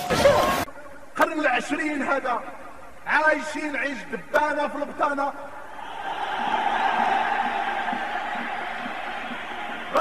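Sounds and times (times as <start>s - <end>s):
audience applauding: 5.8s - 10.0s.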